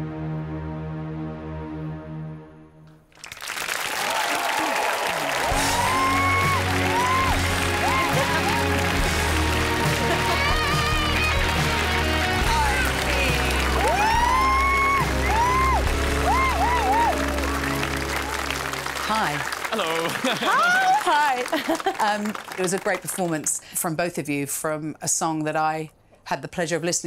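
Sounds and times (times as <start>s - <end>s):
audience applauding and cheering: 3.0s - 23.6s
whoops: 3.9s - 8.9s, 13.3s - 17.8s.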